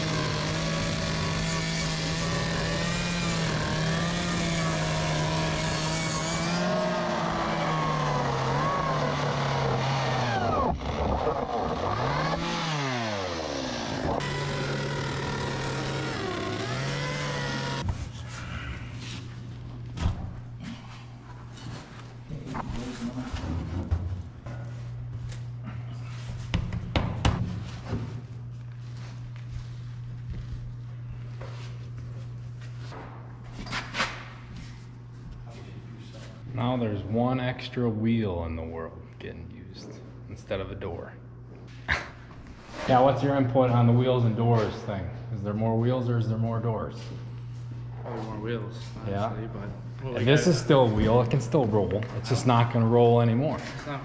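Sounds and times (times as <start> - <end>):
chainsaw cutting plastic: 0.0 - 17.9
steady low hum: 0.0 - 54.0.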